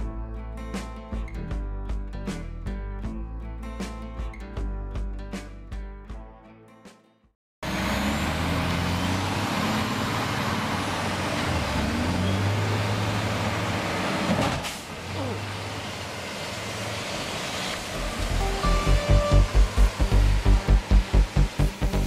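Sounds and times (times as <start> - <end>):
heavy truck engine passing: 7.6 - 22.0.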